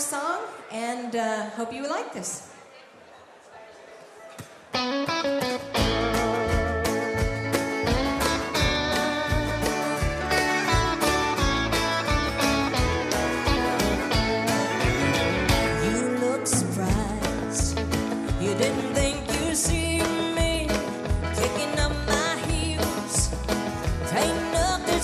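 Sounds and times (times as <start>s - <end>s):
electric guitar: 4.8s - 25.0s
bass and drums steady beat: 5.8s - 25.0s.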